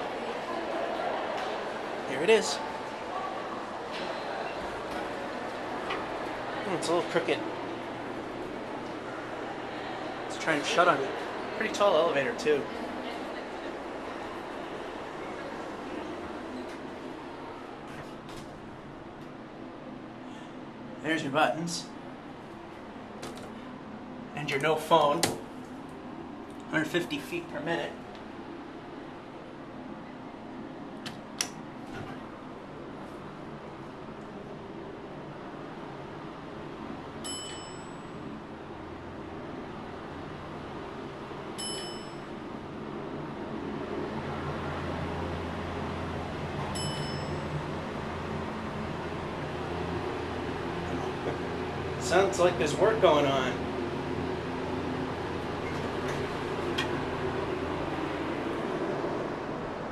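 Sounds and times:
elevator low hum: 0:00.0 - 0:59.9
short electronic dings: 0:37.2 - 0:38.1, 0:41.6 - 0:42.3, 0:46.8 - 0:47.5.

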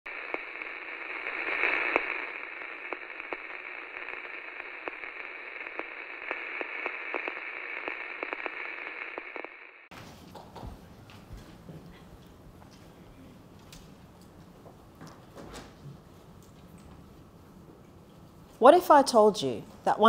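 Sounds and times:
radio static hiss and crackle: 0:00.1 - 0:09.9.

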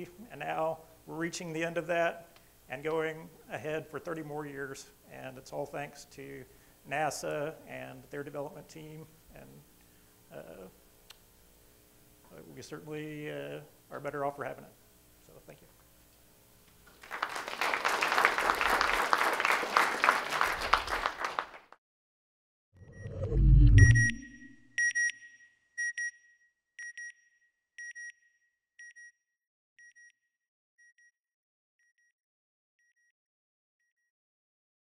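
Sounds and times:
audience applauding: 0:16.8 - 0:21.8
short electronic beeps: 0:22.8 - 0:26.2
low whoosh ending in boom: 0:22.9 - 0:24.5.

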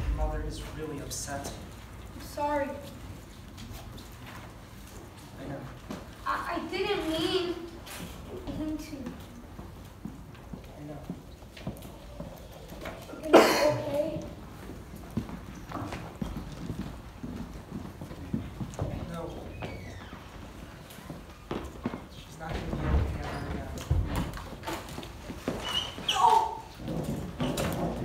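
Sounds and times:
voices in echoing room: 0:00.0 - 0:28.0.

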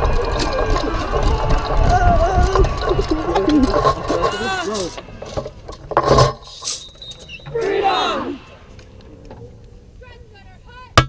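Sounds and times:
indistinct voices: 0:00.0 - 0:05.8, 0:07.1 - 0:10.9.

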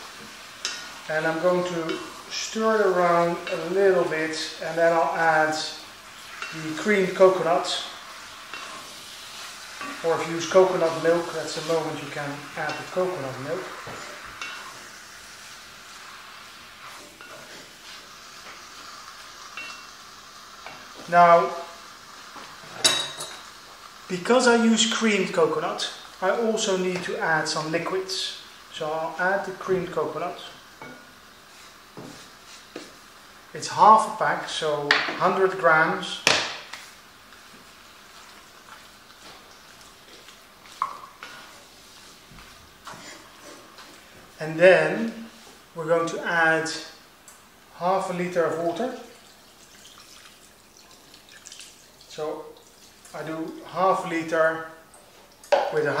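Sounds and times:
meat sizzling in oil: 0:00.0 - 0:56.0
wooden spatula stirring in pot: 0:00.1 - 0:20.0, 0:30.8 - 0:33.0, 0:36.7 - 0:44.4.

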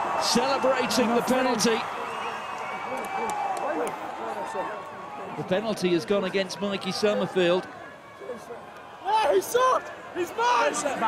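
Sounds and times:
stadium crowd cheering and shouting: 0:00.0 - 0:11.0
sharp claps: 0:02.5 - 0:04.0.

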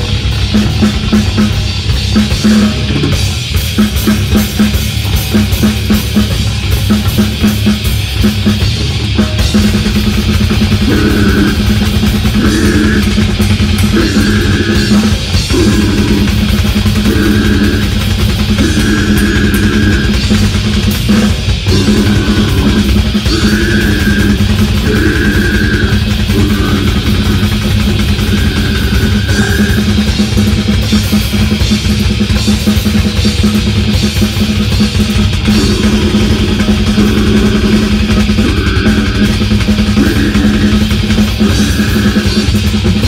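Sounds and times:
higher guitar parts: 0:00.0 - 0:43.0
live metal band playing: 0:00.0 - 0:43.0
rapid bass drum hits: 0:00.0 - 0:43.0.

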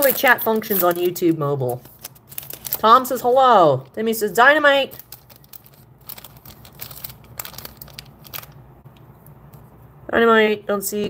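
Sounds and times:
cards clicking and rustling: 0:00.0 - 0:02.9, 0:04.9 - 0:08.6.

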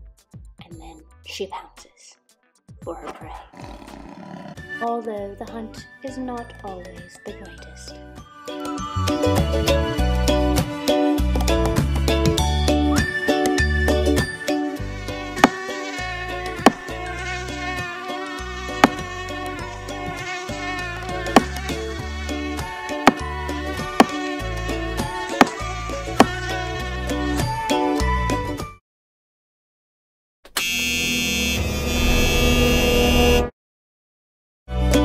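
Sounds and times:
background music: 0:04.5 - 0:28.8
high buzzing: 0:14.8 - 0:27.3
sharp thumps: 0:15.4 - 0:15.6, 0:16.6 - 0:17.0, 0:18.7 - 0:19.1, 0:21.1 - 0:21.9, 0:23.0 - 0:24.3, 0:25.0 - 0:26.4.

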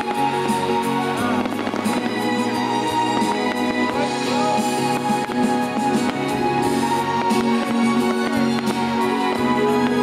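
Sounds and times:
fireworks bangs and crackles: 0:00.0 - 0:10.0
music playing: 0:00.0 - 0:10.0.

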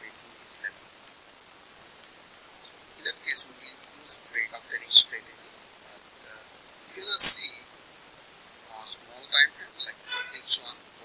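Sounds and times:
man speaking: 0:00.0 - 0:00.8, 0:02.7 - 0:07.6, 0:08.7 - 0:11.0
high-pitched background hiss: 0:00.0 - 0:11.0.

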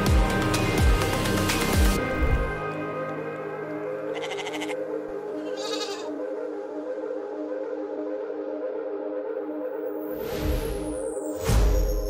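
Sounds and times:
background music: 0:00.0 - 0:12.0
sheep bleating: 0:04.0 - 0:06.2.

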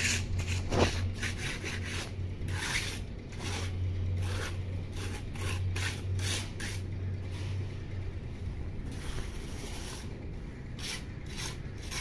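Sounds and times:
hand rubbing wet cement: 0:00.0 - 0:07.7, 0:08.9 - 0:12.0.

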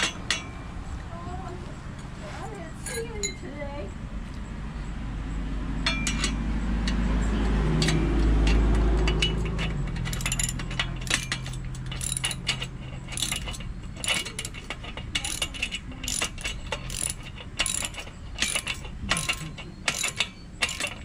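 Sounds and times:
ratchet wrench clicking: 0:05.8 - 0:21.0.

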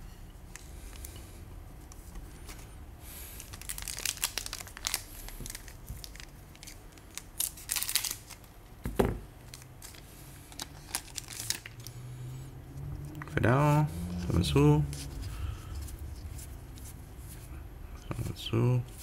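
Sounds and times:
wrapper tearing and crinkling: 0:03.4 - 0:08.6, 0:09.5 - 0:11.9.

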